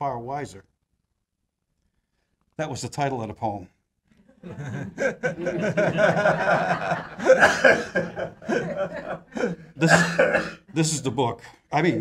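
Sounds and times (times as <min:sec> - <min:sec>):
man laughing: 0:04.5 - 0:11.2.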